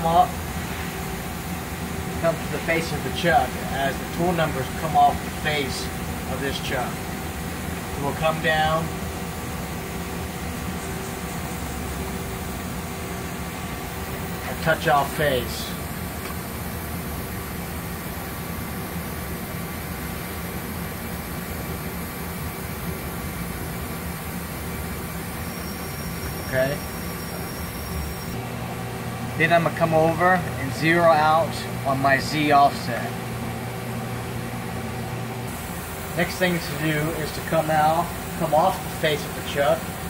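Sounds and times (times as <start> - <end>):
machine hiss: 0.0 - 28.4, 35.4 - 40.0
faint high whine: 0.0 - 33.4, 34.7 - 40.0
machine humming with low tones: 0.0 - 40.0.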